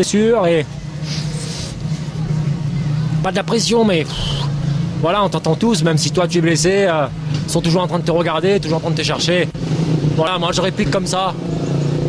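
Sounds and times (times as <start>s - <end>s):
engine humming steadily: 0.0s - 12.0s
outdoor noise: 0.0s - 12.0s.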